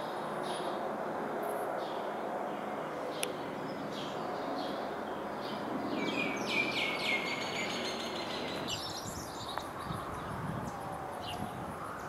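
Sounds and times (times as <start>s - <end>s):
outdoor background hiss: 0.0s - 12.0s
songbird chirping: 1.8s - 12.0s.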